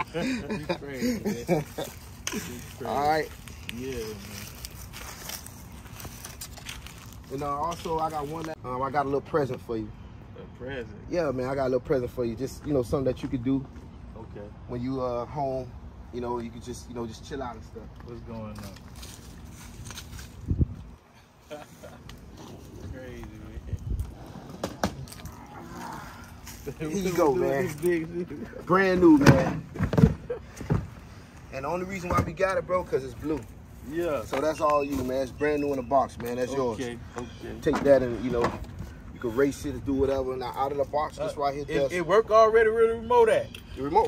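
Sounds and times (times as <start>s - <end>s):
outdoor background noise: 0.0s - 44.0s
soft footsteps and scuffs: 1.8s - 8.6s, 18.4s - 21.0s.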